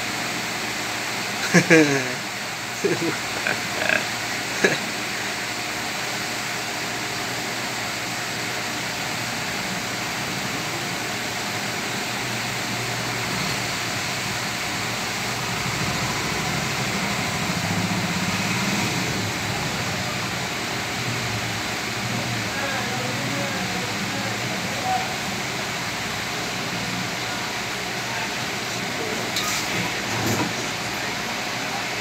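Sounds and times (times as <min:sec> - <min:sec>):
steady hiss with low hum: 0:00.0 - 0:32.0
short laugh: 0:01.4 - 0:02.2, 0:02.8 - 0:04.9.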